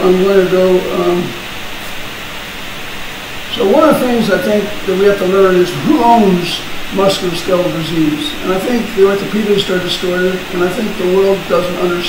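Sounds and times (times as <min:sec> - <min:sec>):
man saying um: 0:00.0 - 0:01.4, 0:03.5 - 0:12.0
steady background hiss: 0:00.0 - 0:12.0.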